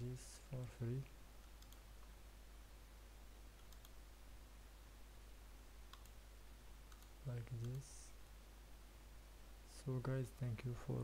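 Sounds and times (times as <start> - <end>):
steady low hum: 0.0 - 11.0
computer mouse clicks: 1.4 - 2.2, 3.6 - 4.0, 5.9 - 6.2, 6.9 - 7.9.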